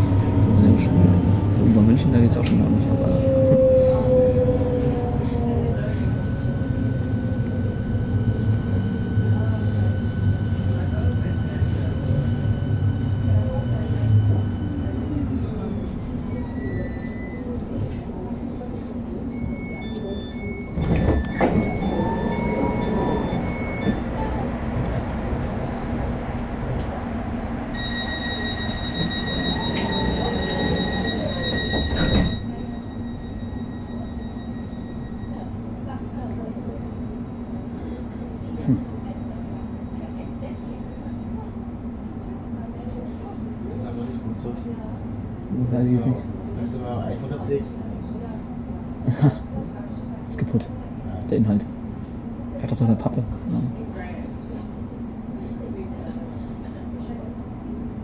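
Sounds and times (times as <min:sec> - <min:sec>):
electric train braking whine: 0:00.0 - 0:18.0, 0:19.3 - 0:24.4, 0:27.6 - 0:38.2
steady warning tone: 0:00.0 - 0:24.5, 0:27.6 - 0:42.2
door beeps: 0:05.8 - 0:17.7, 0:19.3 - 0:24.2, 0:27.8 - 0:35.7
doors closing thump: 0:20.8 - 0:22.0.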